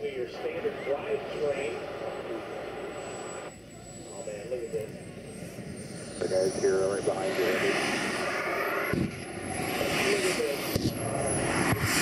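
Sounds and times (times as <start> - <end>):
turbine engine whine: 0.0 - 12.0.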